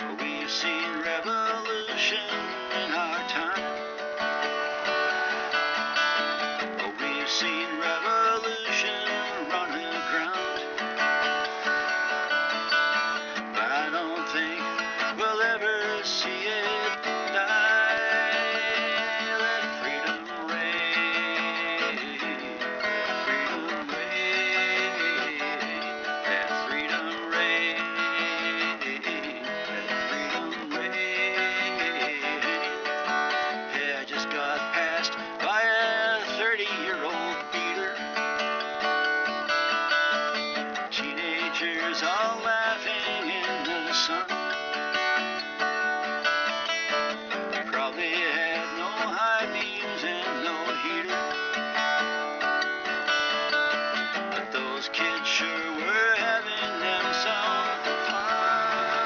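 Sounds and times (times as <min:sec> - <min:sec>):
acoustic guitar strumming chords: 0:00.0 - 0:59.0.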